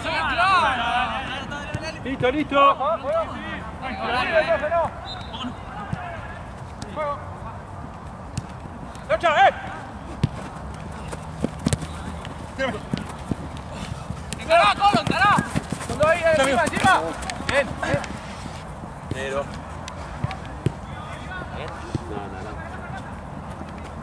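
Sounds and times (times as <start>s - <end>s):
footballers shouting calls: 0.0s - 8.0s, 9.0s - 24.0s.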